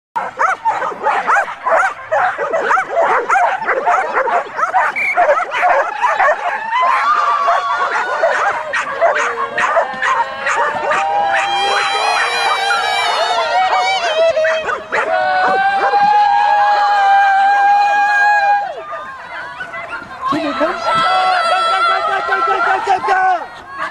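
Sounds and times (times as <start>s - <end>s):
dogs barking and yipping: 0.2s - 16.1s, 18.8s - 22.1s
dogs whining and squealing: 0.4s - 16.0s.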